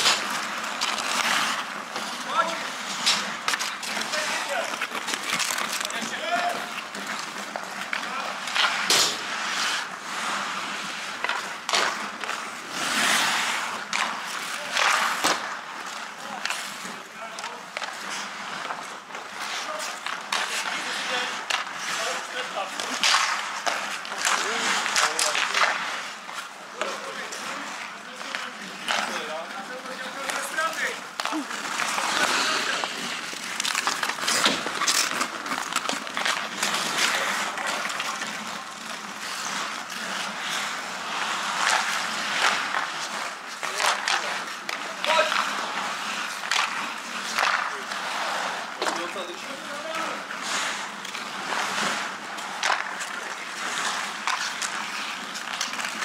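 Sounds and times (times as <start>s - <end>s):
skate blades scraping ice: 0.0s - 56.0s
sticks clacking on puck and boards: 0.0s - 56.0s.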